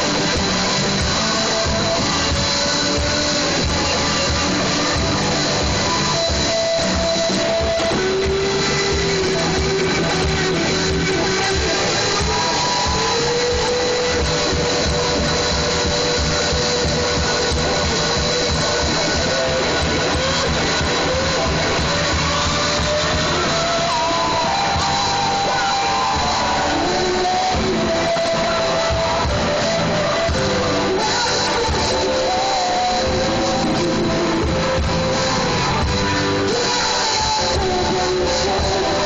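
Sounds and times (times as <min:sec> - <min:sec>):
live rock band: 0:00.0 - 0:39.0
long bending guitar notes: 0:00.0 - 0:39.0.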